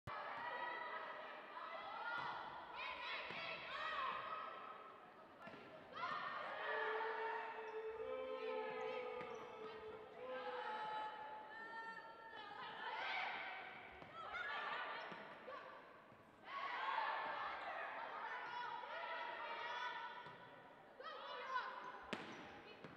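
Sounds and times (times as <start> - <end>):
voices calling and shouting: 0.1 - 15.8.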